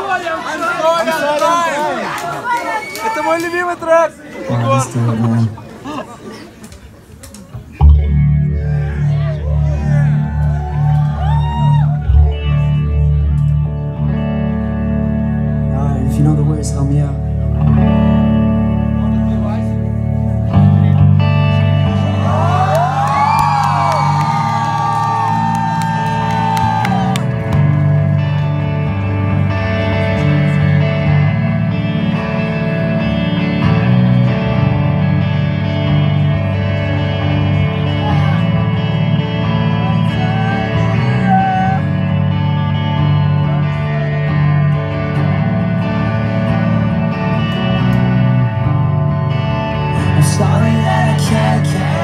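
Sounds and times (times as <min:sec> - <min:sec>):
electric guitar: 0:07.6 - 0:52.0
low bass notes: 0:07.7 - 0:52.0.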